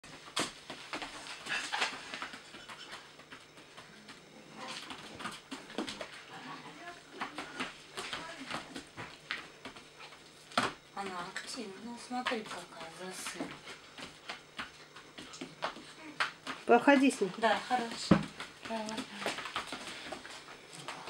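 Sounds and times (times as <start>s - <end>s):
puppy claws tapping on hard floor: 7.2s - 21.0s.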